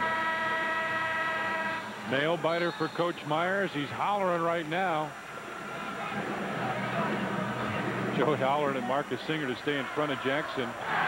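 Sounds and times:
arena buzzer horn blast: 0.0s - 3.6s.

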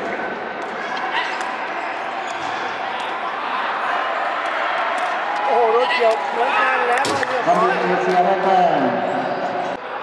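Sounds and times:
murmur of spectators talking: 0.0s - 10.0s.

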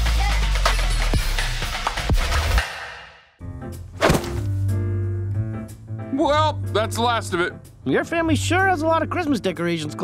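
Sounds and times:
gentle background music: 3.4s - 10.0s
cardboard box thunk: 4.0s - 4.6s.

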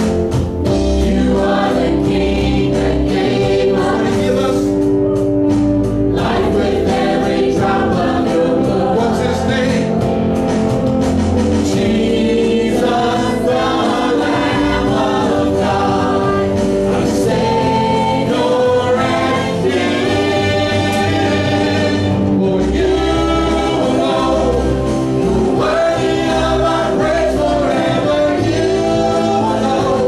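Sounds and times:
drums: 0.0s - 30.0s
guitar: 0.0s - 30.0s
keyboard: 0.0s - 30.0s
people singing: 0.6s - 4.8s, 6.0s - 10.2s, 11.5s - 30.0s.

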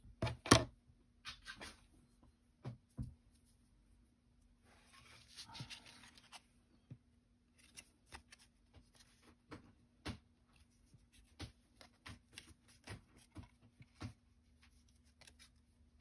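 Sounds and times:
paper rustling and sliding: 4.7s - 6.6s.

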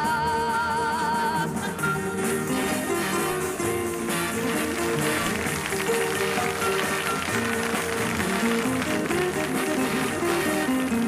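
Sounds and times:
big band instrumental: 0.0s - 11.0s.

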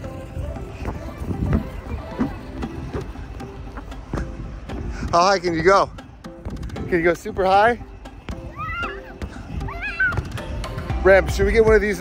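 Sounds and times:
young girl squealing: 8.5s - 10.3s.

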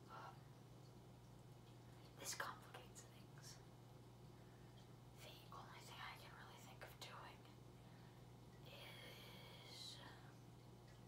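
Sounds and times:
steady low hum: 0.0s - 11.0s
faint whispering: 2.2s - 3.6s, 5.2s - 7.6s, 8.6s - 10.4s.

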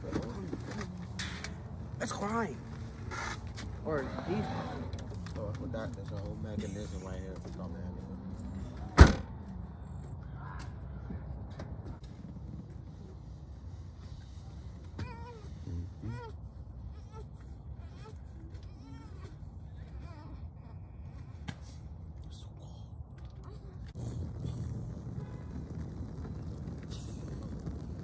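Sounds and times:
low steady rumble: 0.0s - 28.0s.

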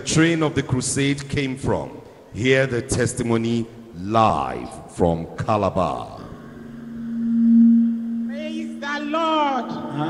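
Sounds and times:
low sustained tone: 6.3s - 10.0s.

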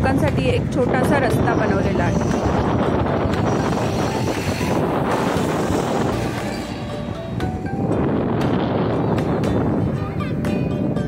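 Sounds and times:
traffic rumble of tyres and engines: 0.0s - 11.0s.

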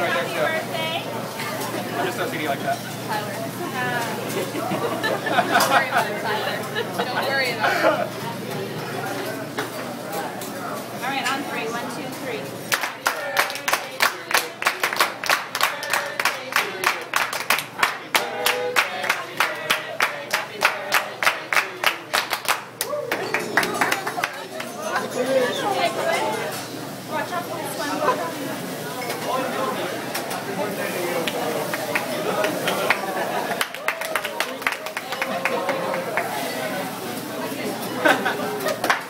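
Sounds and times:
voices chattering and laughing: 0.0s - 39.0s
people clapping in rhythm: 12.7s - 24.8s, 31.2s - 36.4s, 38.8s - 39.0s.

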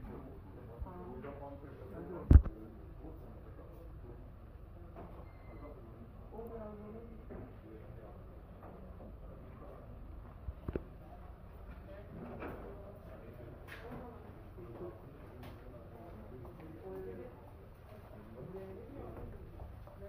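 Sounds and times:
shop interior hum: 0.0s - 20.0s.

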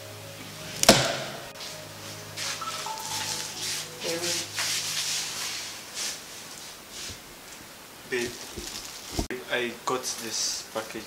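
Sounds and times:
faint background music: 0.0s - 6.4s
door shutting with a bang: 0.8s - 1.3s.

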